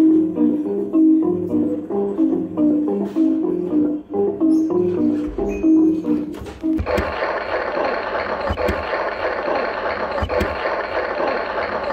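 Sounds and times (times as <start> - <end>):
claw machine prize-win sound: 6.8 - 11.9.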